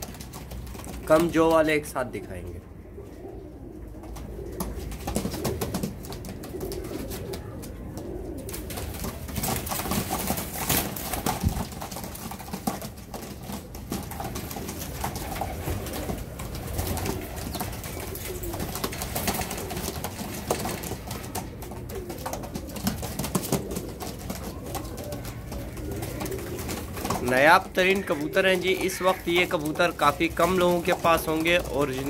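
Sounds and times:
birds clicking and scuffling: 0.0s - 32.0s
pigeons cooing: 0.0s - 32.0s.

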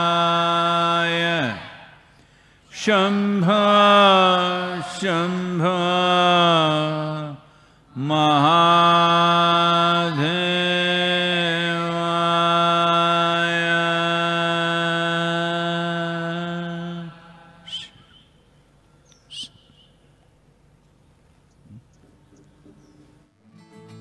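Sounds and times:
bird chirps: 17.6s - 20.3s, 21.4s - 23.3s.

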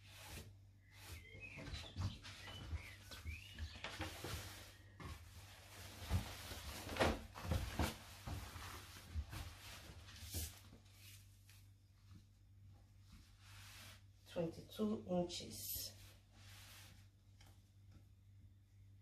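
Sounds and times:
fabric rustling and flapping: 0.9s - 14.1s.

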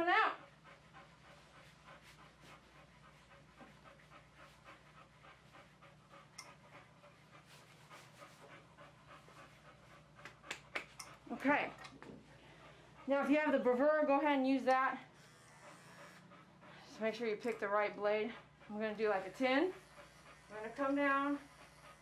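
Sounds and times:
dog panting: 0.0s - 22.0s.

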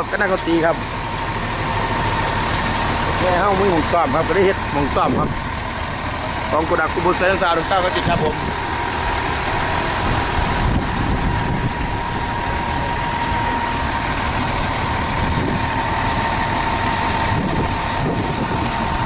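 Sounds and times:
diesel truck engine running: 0.0s - 19.0s
steady whining tone: 0.0s - 19.0s.

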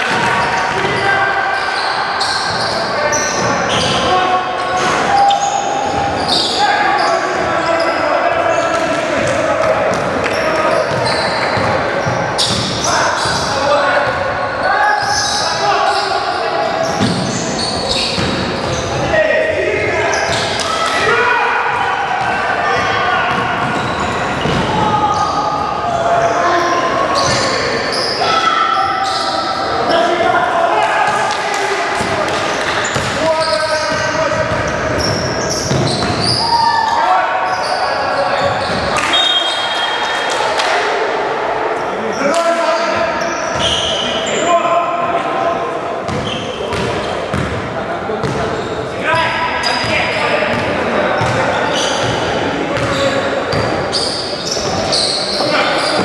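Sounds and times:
voices in echoing hall: 0.0s - 56.0s
basketball bouncing on gym floor: 33.9s - 36.3s.

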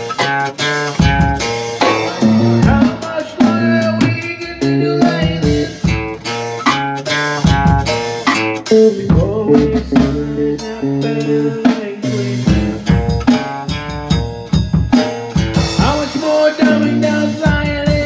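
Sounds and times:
drum kit: 0.0s - 18.0s
guitars strumming chords: 0.0s - 18.0s.

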